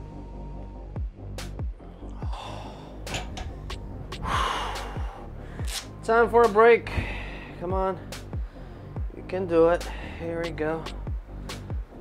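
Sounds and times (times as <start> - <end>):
electronic music with kick drum: 0.9 - 2.4, 3.6 - 5.7, 10.4 - 12.0
man breathing hard: 2.1 - 3.2, 4.1 - 5.7, 6.9 - 9.0.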